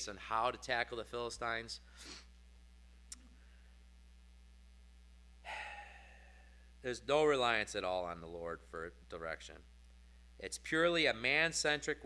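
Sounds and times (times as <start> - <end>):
man speaking: 0.0 - 1.8, 6.8 - 9.6, 10.4 - 12.0
low steady hum: 0.0 - 12.0
man breathing: 1.8 - 2.4, 5.4 - 6.8.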